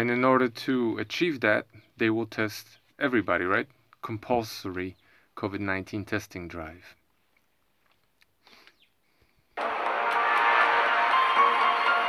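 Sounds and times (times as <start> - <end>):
background music: 9.6 - 12.0.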